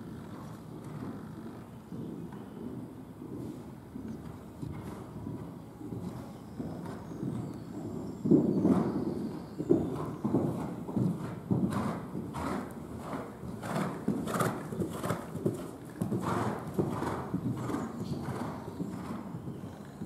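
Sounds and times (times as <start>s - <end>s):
muffled hoofbeats on sand: 0.1s - 20.0s.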